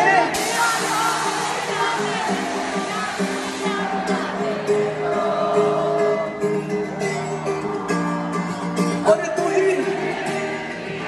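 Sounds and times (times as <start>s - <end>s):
audience singing along: 0.0s - 9.0s, 9.6s - 11.0s
amplified live music: 0.0s - 11.0s.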